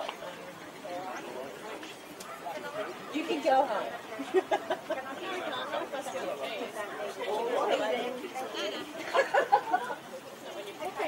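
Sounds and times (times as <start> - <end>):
background chatter of people: 0.0 - 11.0.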